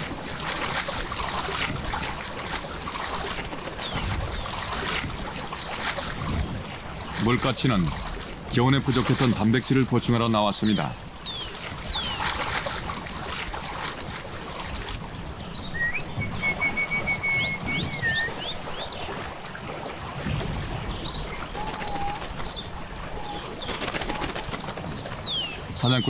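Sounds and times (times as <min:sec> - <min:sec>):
birds chirping and whistling: 0:10.6 - 0:12.5, 0:15.2 - 0:19.0, 0:20.8 - 0:26.0
rapid bird trill: 0:21.1 - 0:25.6.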